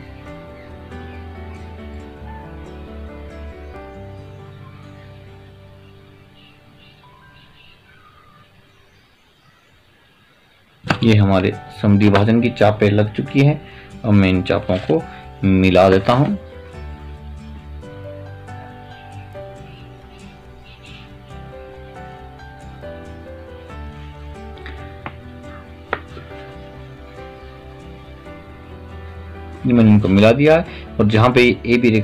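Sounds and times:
soft background music: 0.0 - 32.0.

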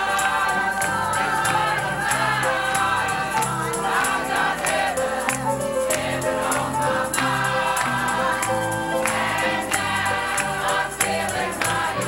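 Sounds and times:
choir singing gospel song: 0.0 - 12.0
instrumental accompaniment with bass: 0.0 - 12.0.

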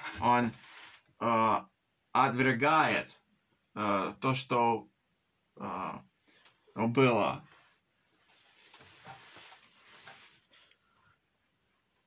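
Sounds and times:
paper rustling: 0.0 - 1.1, 7.5 - 12.0.

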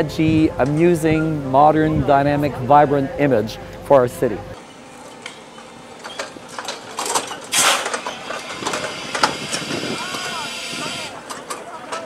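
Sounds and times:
engine running: 4.6 - 11.4
mechanical clicks and clanks: 6.0 - 12.0.

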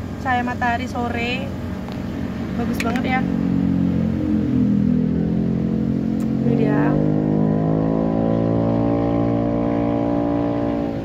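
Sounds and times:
car engine droning: 0.0 - 11.0.

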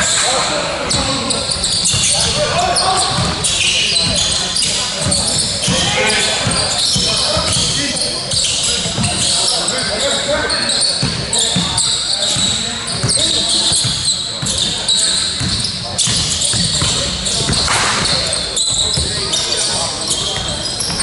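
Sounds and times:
players' voices: 0.0 - 21.0
sneakers squeaking: 0.0 - 21.0.

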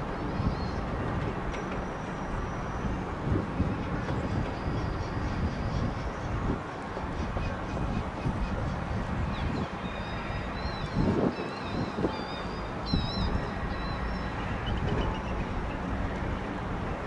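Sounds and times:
steady outdoor rumble: 0.0 - 17.0
birds chirping: 3.7 - 15.9.

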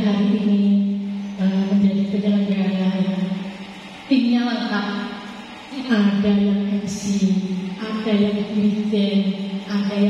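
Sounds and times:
woman chanting into a microphone: 4.1 - 10.0.

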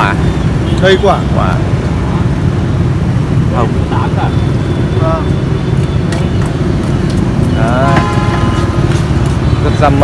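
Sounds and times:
people talking: 0.8 - 1.7, 3.5 - 5.3, 7.4 - 8.5, 9.6 - 10.0.

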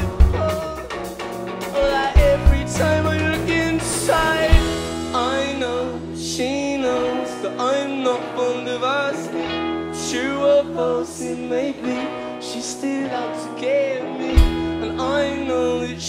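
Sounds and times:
heavy low drum hit: 0.0 - 0.8, 1.9 - 5.4
male vocal singing: 0.0 - 1.0, 1.8 - 16.0
drums with cymbal hits: 0.0 - 5.6
bass guitar: 0.0 - 16.0
electric guitars: 0.0 - 16.0.

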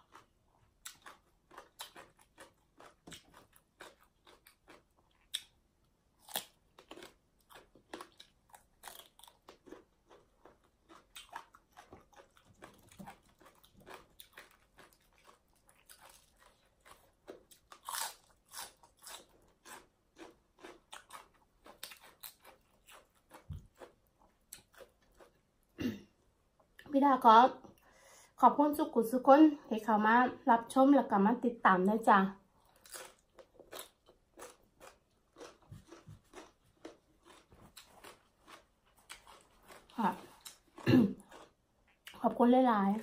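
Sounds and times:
chewing crisp raw vegetables: 0.0 - 5.6, 6.2 - 25.5, 32.6 - 42.3.

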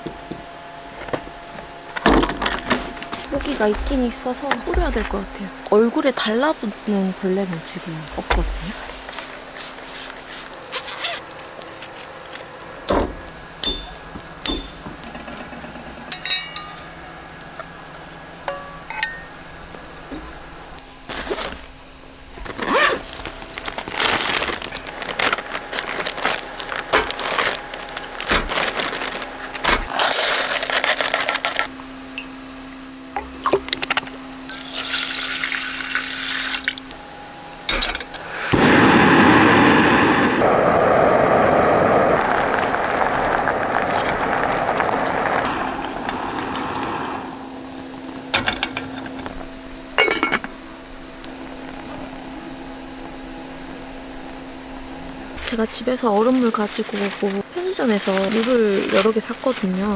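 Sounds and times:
night insects trilling: 0.0 - 59.9
metal cookware clinking: 16.2 - 16.8.

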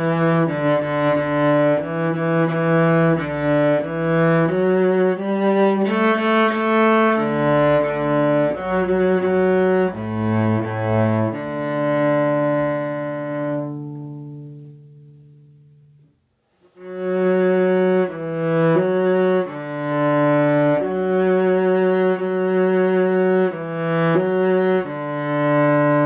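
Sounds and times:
bowed cello playing: 0.0 - 26.0.

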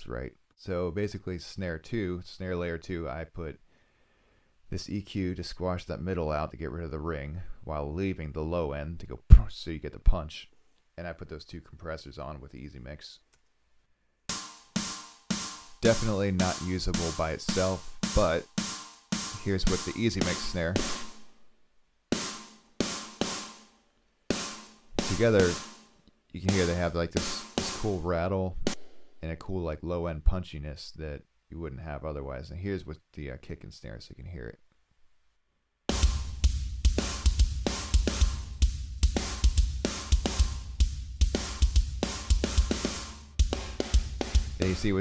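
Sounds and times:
snare drum hits: 14.3 - 21.2, 22.2 - 23.7, 24.3 - 25.9, 26.5 - 28.0, 35.9 - 45.0.

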